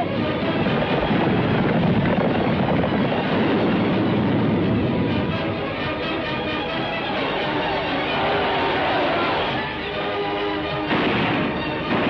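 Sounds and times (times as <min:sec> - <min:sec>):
army charging battle din: 0:07.3 - 0:09.7, 0:10.9 - 0:12.0.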